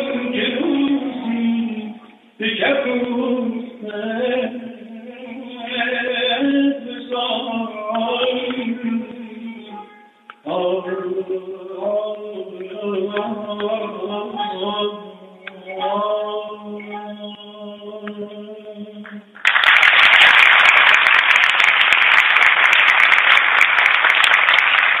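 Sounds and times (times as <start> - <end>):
man singing long notes: 0.0 - 19.3
tar accompaniment: 0.0 - 21.0
audience applause: 19.4 - 25.0.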